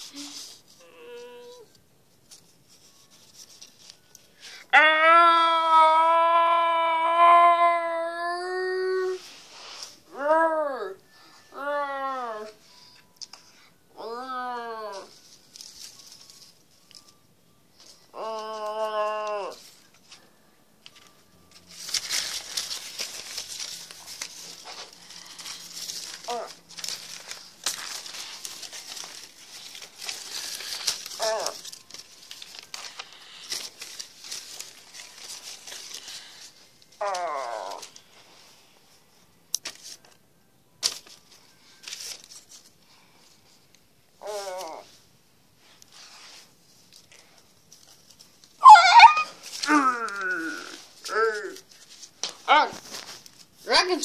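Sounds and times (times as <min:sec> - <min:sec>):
paper cutouts rustling: 0:00.0 - 0:04.7, 0:07.5 - 0:54.0.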